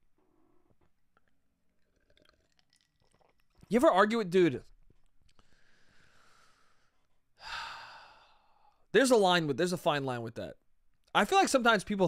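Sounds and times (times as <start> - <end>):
man sighing: 7.4 - 8.7.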